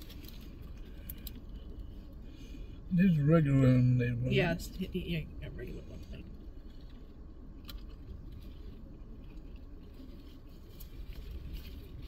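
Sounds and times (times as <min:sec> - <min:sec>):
small handling noises: 0:00.0 - 0:02.4, 0:05.7 - 0:12.0
low steady car cabin rumble: 0:00.0 - 0:12.0.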